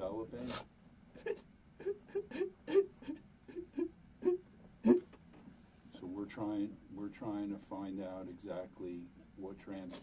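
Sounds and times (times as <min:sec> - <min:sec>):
man sobbing: 0:01.2 - 0:05.1.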